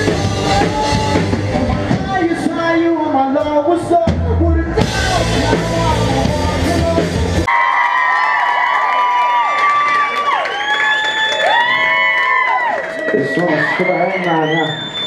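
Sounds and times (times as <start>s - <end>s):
live rock band playing: 0.0s - 7.5s
audience cheering and whooping: 7.5s - 15.0s.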